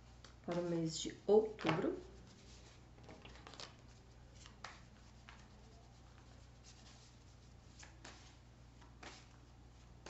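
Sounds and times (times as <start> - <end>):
low steady hum: 0.0 - 10.0
cards being shuffled: 1.6 - 7.1, 7.7 - 10.0.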